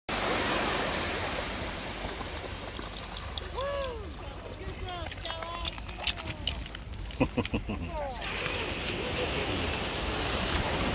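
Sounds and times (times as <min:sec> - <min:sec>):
small waves washing on sand: 0:00.1 - 0:10.9.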